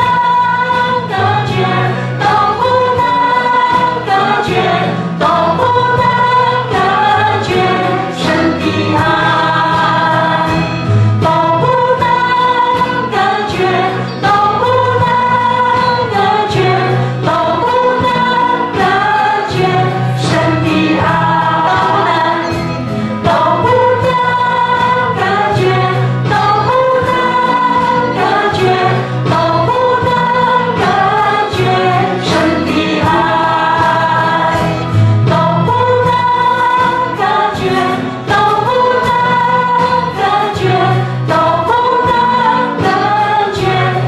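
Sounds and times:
group singing praise song: 0:00.0 - 0:44.0
worship band playing: 0:00.0 - 0:44.0.

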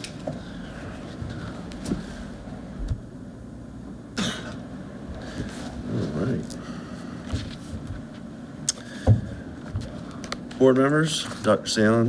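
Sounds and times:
meeting room background noise: 0:00.0 - 0:12.0
person coughing: 0:04.2 - 0:04.6.

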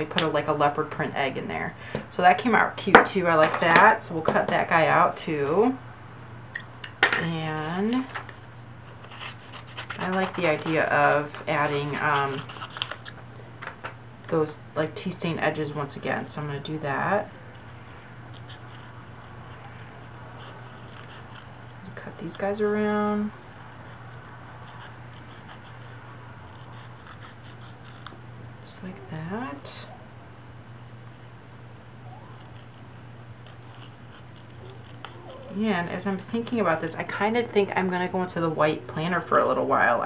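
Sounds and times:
steady low hum: 0:00.0 - 0:40.0
scissors snipping paper: 0:09.0 - 0:13.2, 0:32.3 - 0:35.6
scissors cutting paper clicks: 0:33.4 - 0:35.2.

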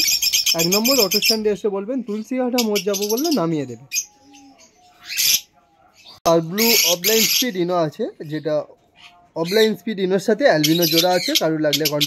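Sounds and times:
parrots squawking and chirping: 0:00.0 - 0:12.0.

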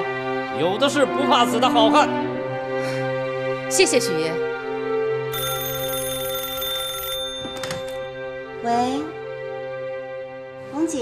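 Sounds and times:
background music: 0:00.0 - 0:11.0
telephone bell ringing: 0:05.3 - 0:08.5
handset clicks: 0:07.1 - 0:08.1.

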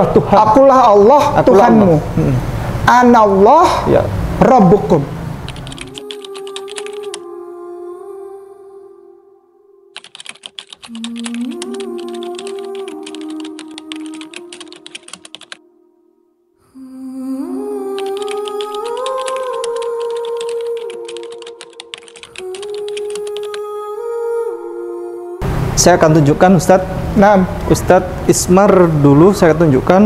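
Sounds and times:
rapid keyboard typing: 0:05.5 - 0:07.2, 0:10.0 - 0:15.6, 0:18.0 - 0:23.6.

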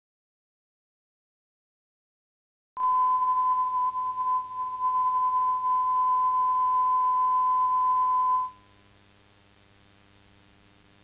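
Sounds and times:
sine test tone: 0:02.8 - 0:09.0.

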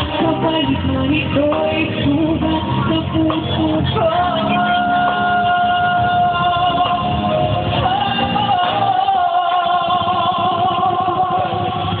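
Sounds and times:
live band backing: 0:00.0 - 0:12.0.

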